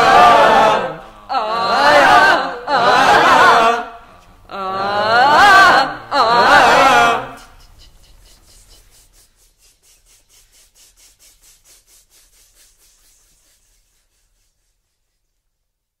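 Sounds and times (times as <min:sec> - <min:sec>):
rhythmic scraping: 0:07.4 - 0:15.4.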